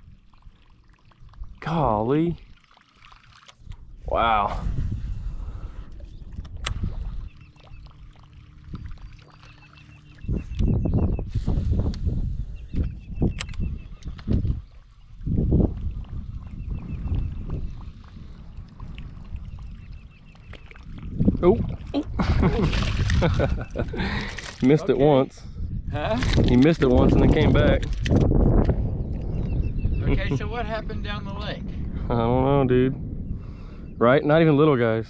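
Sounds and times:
fish splashing in water: 2.5s - 3.6s, 17.8s - 23.6s
wind gusts rumbling: 10.3s - 35.0s.

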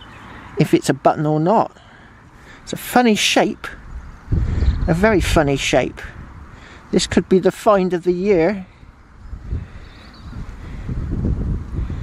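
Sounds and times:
wind buffeting microphone: 3.7s - 12.0s.

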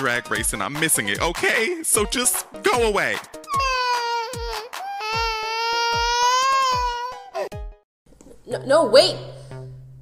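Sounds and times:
music with kick-drum beat: 0.3s - 3.8s
person wailing: 3.5s - 7.5s.

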